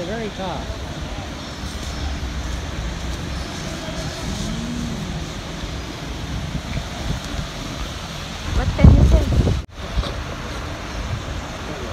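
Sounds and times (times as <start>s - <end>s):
city traffic rumble: 0.0s - 11.9s.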